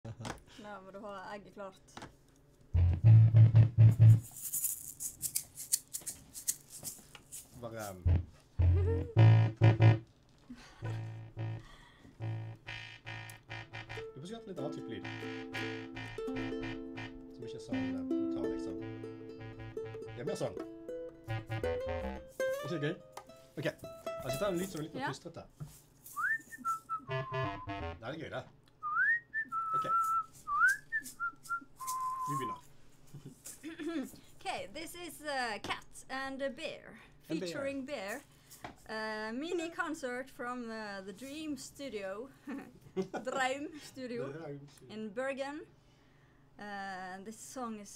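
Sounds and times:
shaker egg rattling: 0:04.2 - 0:08.0
strummed ukulele chords: 0:14.0 - 0:25.0
woman whistling a tune: 0:26.2 - 0:27.1, 0:28.8 - 0:32.6.

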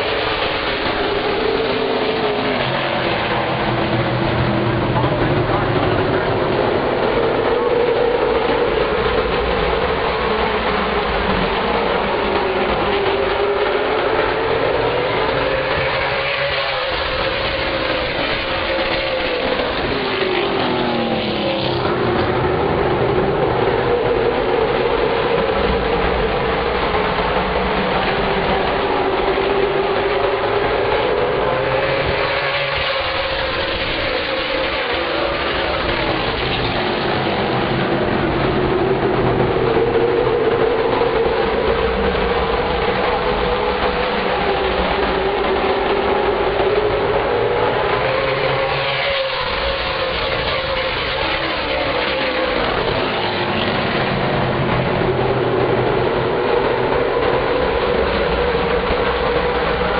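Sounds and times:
race car engines passing: 0:00.0 - 0:59.9.

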